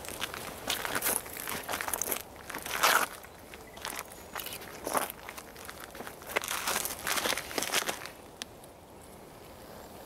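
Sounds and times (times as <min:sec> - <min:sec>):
dry leaves rustling: 0:00.0 - 0:08.2.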